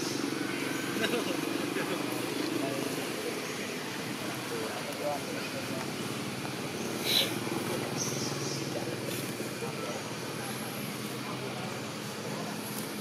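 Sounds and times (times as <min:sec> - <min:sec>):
indistinct voices: 0:00.0 - 0:13.0.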